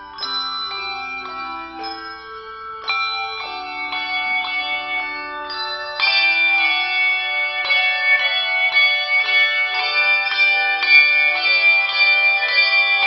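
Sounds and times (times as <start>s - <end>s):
handbells ringing: 0.0s - 13.0s.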